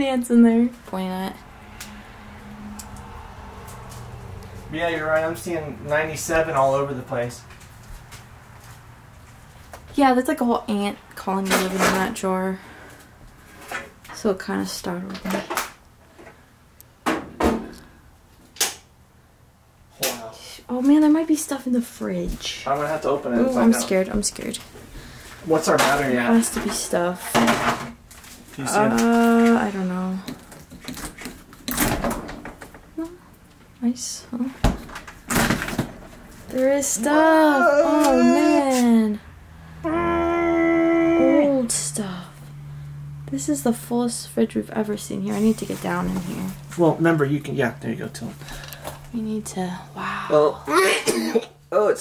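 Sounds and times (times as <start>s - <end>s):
person holding long ooh: 37.3s - 39.0s, 39.8s - 41.7s, 49.9s - 50.8s.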